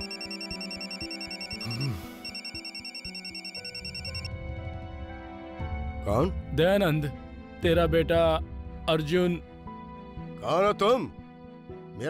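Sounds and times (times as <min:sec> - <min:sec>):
mobile phone ringing: 0:00.0 - 0:04.3
soft background music: 0:00.0 - 0:12.0.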